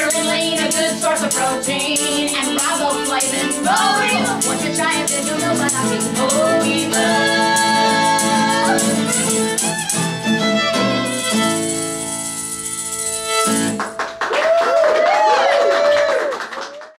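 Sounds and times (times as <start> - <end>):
fiddle and acoustic guitar: 0.0 - 14.2
sliding notes: 0.0 - 14.2.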